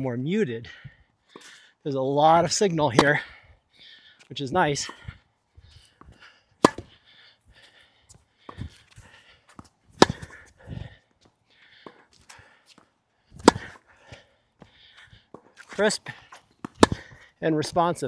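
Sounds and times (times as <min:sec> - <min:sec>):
racquet striking tennis ball: 0:02.9 - 0:03.3, 0:06.6 - 0:07.0, 0:10.0 - 0:10.5, 0:13.4 - 0:13.8, 0:15.3 - 0:17.2
ball bouncing: 0:06.6 - 0:06.9, 0:10.0 - 0:10.4, 0:13.4 - 0:13.8, 0:16.6 - 0:17.2
footsteps on court: 0:07.6 - 0:17.8.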